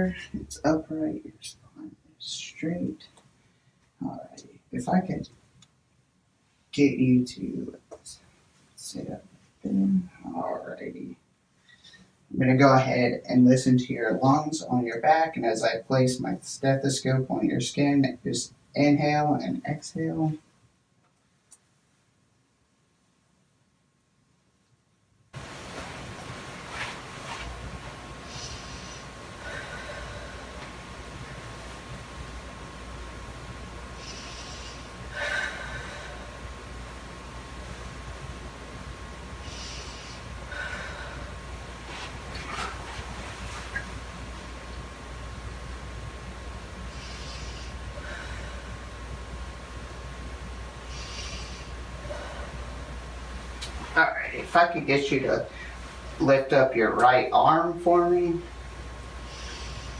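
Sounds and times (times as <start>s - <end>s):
steady low hum: 0.0s - 23.1s, 25.2s - 59.9s
person breathing deeply: 28.2s - 30.9s, 34.0s - 36.8s, 39.4s - 43.2s, 46.8s - 49.1s, 50.8s - 53.0s, 55.5s - 55.9s, 59.2s - 59.9s.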